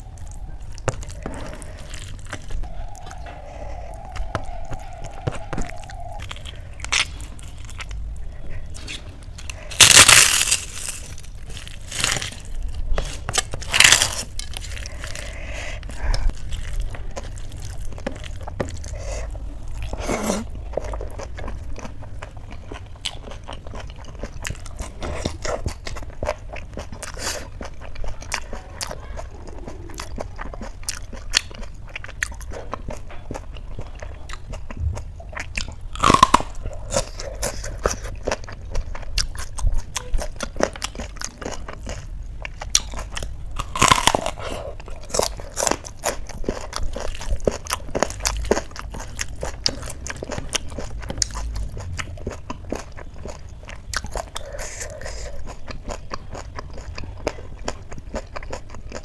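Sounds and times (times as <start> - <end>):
person chewing and crunching food: 0.0 - 59.0.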